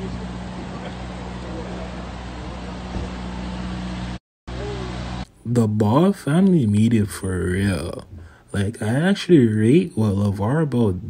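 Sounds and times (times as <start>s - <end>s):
faint voices: 0.0s - 3.1s
low engine hum: 0.0s - 5.3s.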